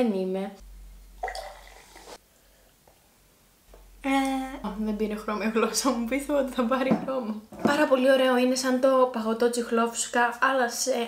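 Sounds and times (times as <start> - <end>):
soda poured into a glass: 1.2 - 2.2.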